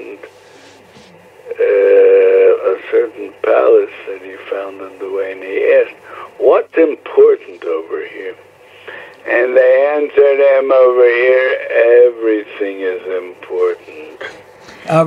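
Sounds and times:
person talking over telephone line: 0.0 - 0.3, 1.0 - 8.4, 9.2 - 15.0.

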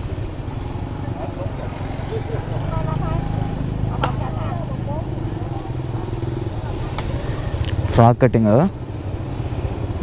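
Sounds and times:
motorbike engine running: 0.0 - 10.0.

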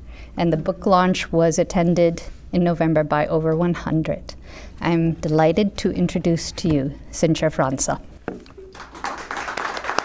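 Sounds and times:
audience applause: 8.7 - 10.0.

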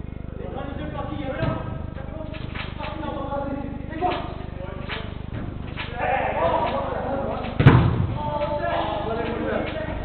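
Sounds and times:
low buzz: 0.0 - 9.2
person shouting in echoing hall: 6.0 - 6.9.

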